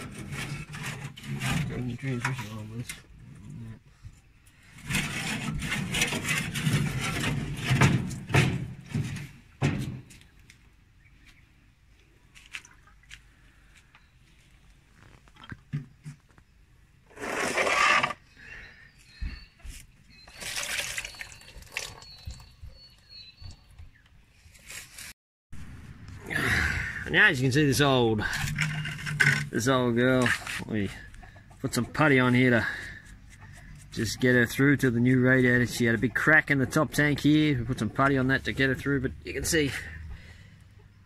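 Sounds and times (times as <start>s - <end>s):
coolant sloshing and pouring out: 20.2s - 22.5s.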